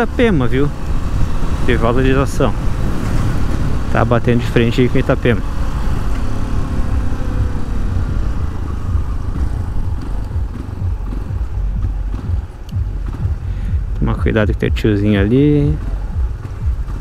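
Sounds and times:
motorcycle engine slowing: 0:00.0 - 0:17.0
wind rumble on microphone: 0:00.0 - 0:17.0.

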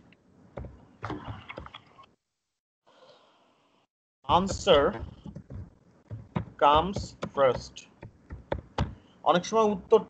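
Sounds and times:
keyboard typing: 0:04.3 - 0:09.0.

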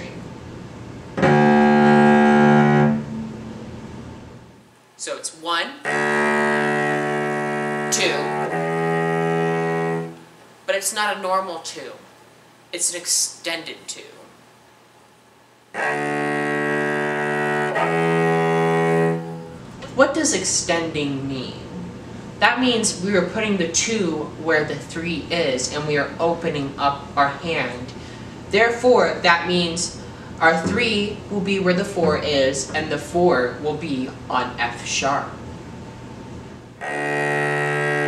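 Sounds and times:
cello bowed low note: 0:01.2 - 0:03.7, 0:05.8 - 0:10.2, 0:15.7 - 0:19.7, 0:36.8 - 0:38.0.

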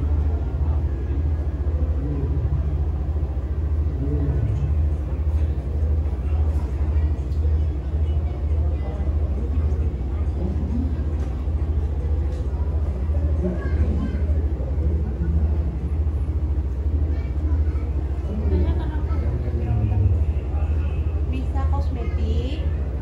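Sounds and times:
loud low rumble: 0:00.0 - 0:07.2, 0:08.2 - 0:21.8
people talking in background: 0:00.0 - 0:23.0.

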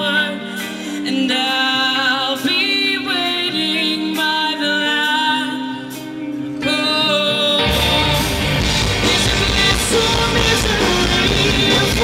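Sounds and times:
woman singing into microphone: 0:00.0 - 0:08.4, 0:09.0 - 0:12.0
rock band with drums: 0:00.0 - 0:12.0
sustained backing music: 0:00.0 - 0:12.0.

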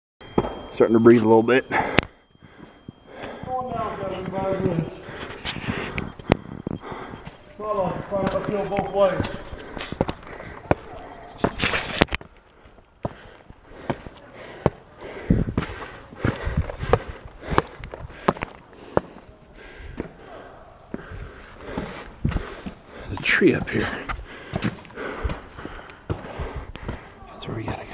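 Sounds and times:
person breathing: 0:01.7 - 0:08.6, 0:09.2 - 0:11.3, 0:12.4 - 0:23.2, 0:23.8 - 0:27.3
footsteps on stone steps: 0:01.7 - 0:27.9
person speaking: 0:03.1 - 0:06.0, 0:06.9 - 0:11.8.

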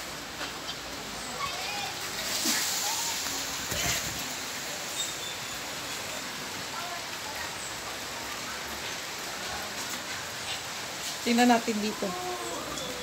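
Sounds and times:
steady hiss of water: 0:00.0 - 0:13.0.

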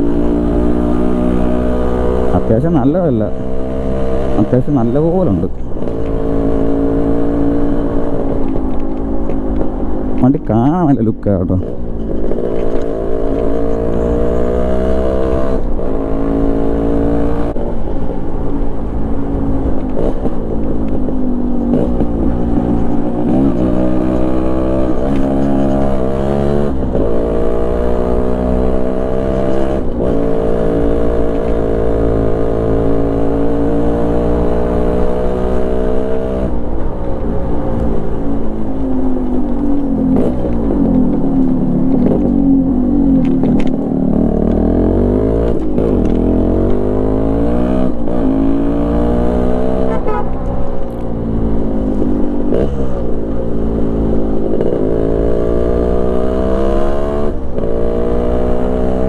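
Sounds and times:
two-stroke motorcycle engine revving: 0:00.0 - 0:08.3, 0:12.4 - 0:17.6, 0:21.6 - 0:36.6, 0:39.9 - 0:50.8, 0:51.5 - 0:59.0.

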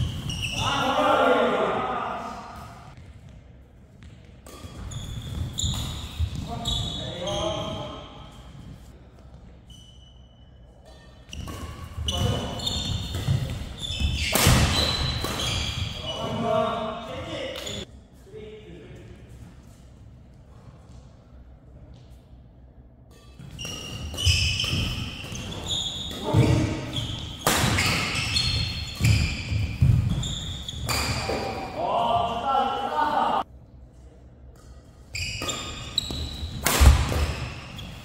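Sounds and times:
racket striking shuttlecock: 0:27.3 - 0:30.2, 0:35.4 - 0:37.5.

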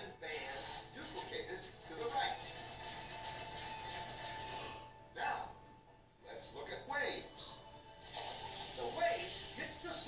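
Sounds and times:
two-tone chime: 0:02.3 - 0:05.0.

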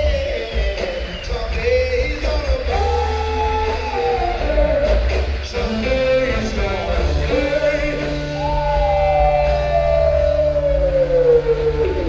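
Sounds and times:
live rock band: 0:00.0 - 0:12.0
sustained note sliding down: 0:08.4 - 0:12.0.

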